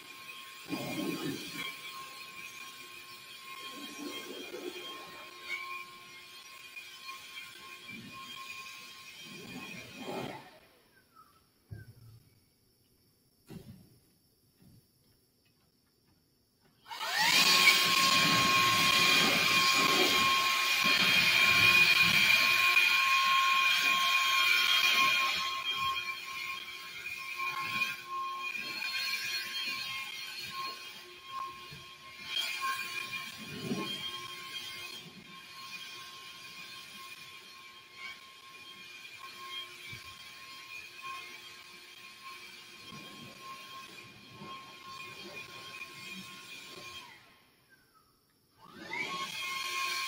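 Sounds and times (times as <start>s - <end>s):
motor machine whining and hissing: 16.9s - 34.9s.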